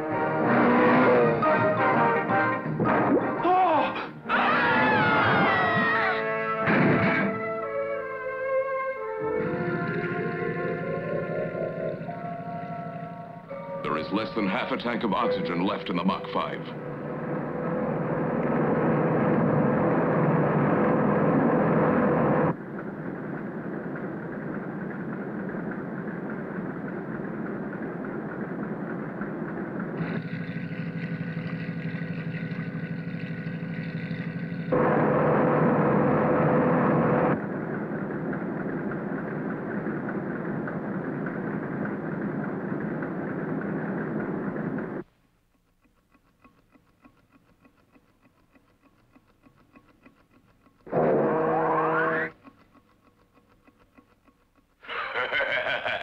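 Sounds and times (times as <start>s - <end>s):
cartoon boat engine rumble: 9.0s - 45.0s, 50.8s - 52.4s, 54.8s - 56.0s
churning water: 28.4s - 35.1s.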